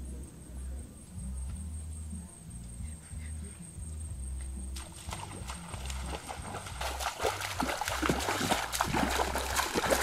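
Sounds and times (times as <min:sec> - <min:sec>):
footsteps splashing through water: 0:04.8 - 0:10.0.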